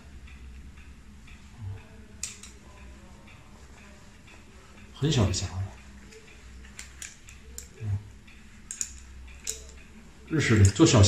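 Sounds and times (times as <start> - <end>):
small metal clamp clicking: 2.2 - 2.6, 6.8 - 7.8, 8.7 - 9.8.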